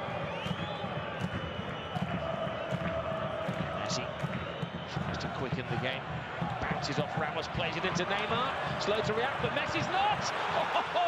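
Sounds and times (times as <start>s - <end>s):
stadium crowd din: 0.0s - 11.0s.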